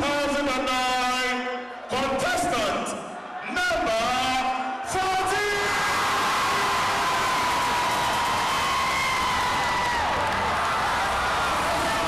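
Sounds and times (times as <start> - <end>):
crowd cheering and whooping: 5.5 - 12.0.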